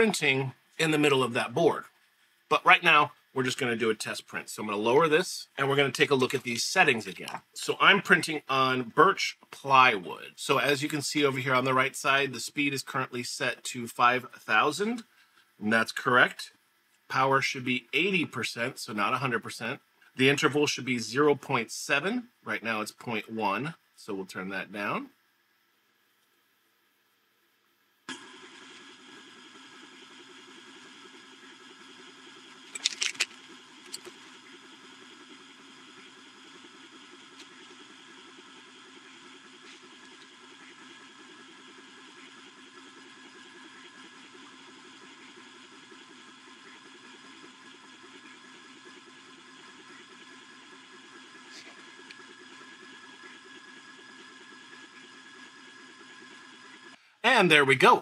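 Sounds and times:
laser engraver mechanical hum: 0:00.0 - 0:26.7, 0:27.9 - 0:58.0.

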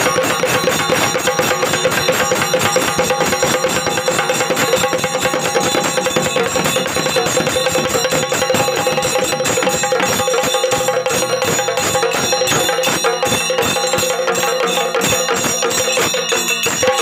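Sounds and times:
drumbeats: 0:00.0 - 0:17.0
metallic ringing percussion: 0:00.0 - 0:17.0.

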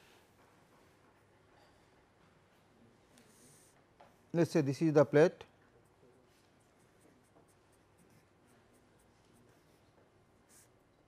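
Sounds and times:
pen scratching on paper: 0:05.9 - 0:10.9.

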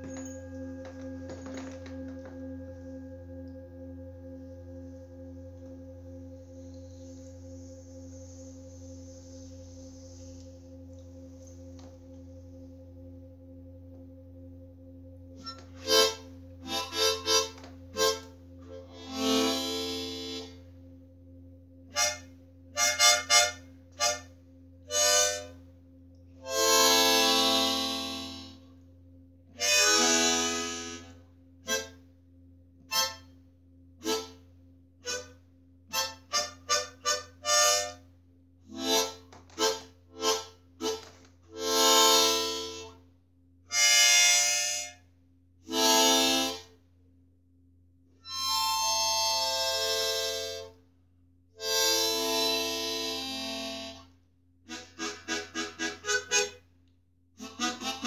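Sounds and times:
harmonica playing slow tune: 0:00.0 - 0:32.1, 0:32.8 - 0:33.4, 0:34.0 - 0:43.0, 0:43.7 - 0:46.8, 0:48.1 - 0:50.8, 0:51.6 - 0:56.7, 0:57.4 - 0:58.0
faint low hum: 0:00.0 - 0:58.0.

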